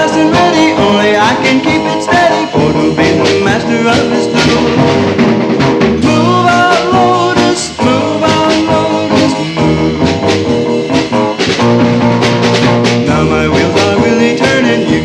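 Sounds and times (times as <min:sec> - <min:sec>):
driving drum beat: 0:00.0 - 0:15.0
electric guitars: 0:00.0 - 0:15.0
surf rock band: 0:00.0 - 0:15.0.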